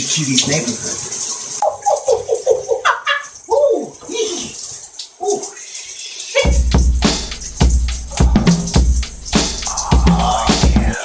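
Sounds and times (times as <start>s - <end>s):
shower water hissing: 0.0s - 11.0s
music with drums: 6.5s - 11.0s
wordless vocal sounds: 7.7s - 11.0s.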